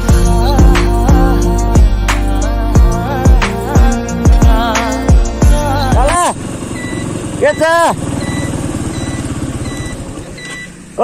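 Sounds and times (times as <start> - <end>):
background music with beat: 0.0 - 6.3
motorcycle engine running: 0.0 - 11.0
person calling out: 5.8 - 6.4
short high beep: 6.8 - 10.8.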